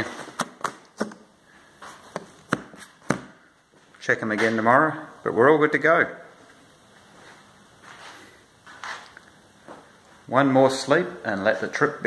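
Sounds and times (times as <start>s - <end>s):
soft rustling: 6.4s - 10.3s.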